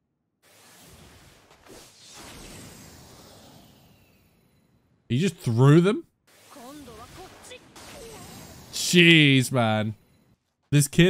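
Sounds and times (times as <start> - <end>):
faint high-pitched speech: 6.5 - 8.4.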